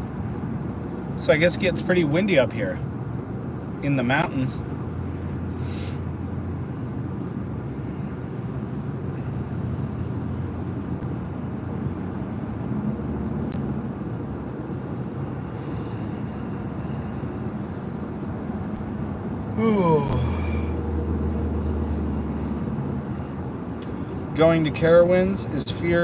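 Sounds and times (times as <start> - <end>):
car road and engine noise: 0.0 - 26.0.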